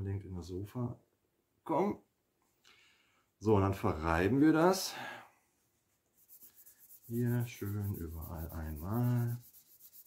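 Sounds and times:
cloth scrubbing wood: 6.2s - 10.0s.

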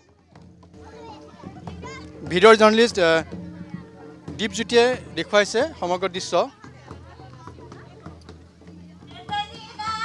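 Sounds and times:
crowd chatter with children's voices: 0.0s - 10.0s.

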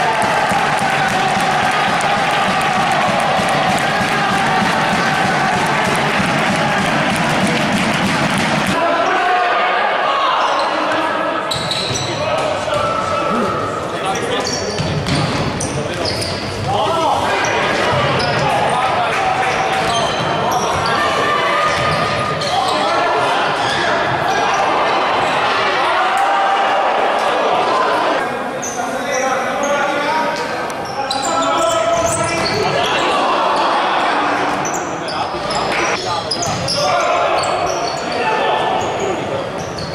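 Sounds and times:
crowd cheering: 0.0s - 11.5s, 16.8s - 28.3s
players shouting: 0.0s - 11.5s.

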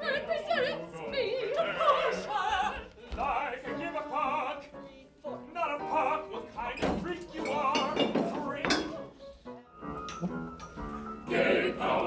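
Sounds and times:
opera singers with vibrato: 0.0s - 4.7s, 11.3s - 12.0s.

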